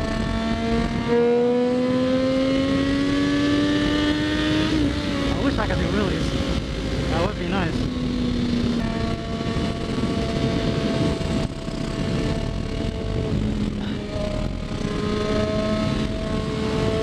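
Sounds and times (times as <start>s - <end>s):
motorcycle engine at steady revs: 0.0s - 17.0s
wind rush on microphone: 0.0s - 17.0s.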